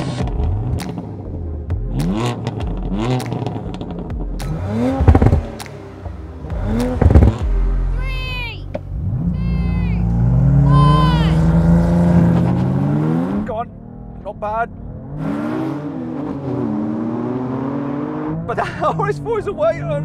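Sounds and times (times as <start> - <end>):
car engine revving: 0.0 - 20.0
sharp exhaust cracks: 1.9 - 7.9.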